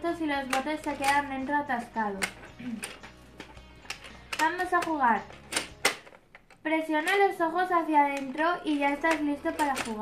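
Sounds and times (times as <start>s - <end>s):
plastic toy clicking: 0.2s - 7.3s, 8.0s - 10.0s.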